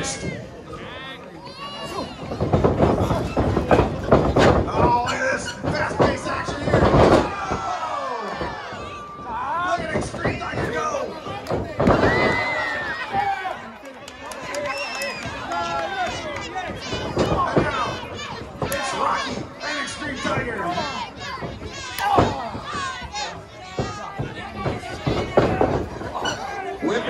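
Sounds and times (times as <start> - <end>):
crowd shouting and yelling: 0.0 - 27.0
bodies thudding on wrestling ring: 2.2 - 9.0, 9.8 - 13.3, 23.7 - 26.4.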